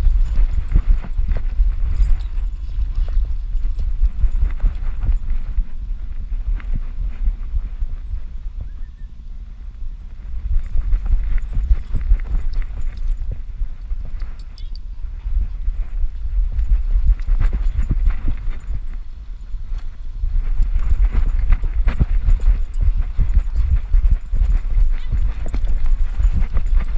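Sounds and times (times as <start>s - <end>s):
dog's running footfalls: 0.0s - 8.2s, 15.2s - 19.0s, 19.6s - 26.9s.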